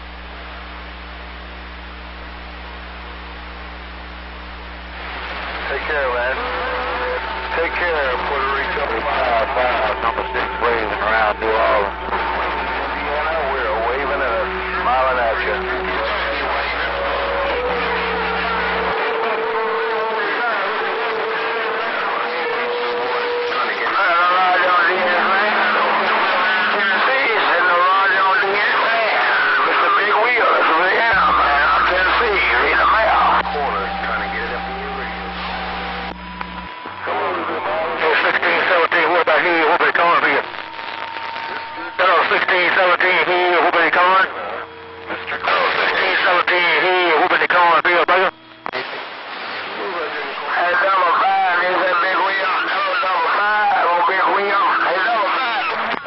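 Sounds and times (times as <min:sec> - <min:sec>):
overlapping radio voices: 0:00.0 - 0:56.0
radio static hiss: 0:00.0 - 0:56.0.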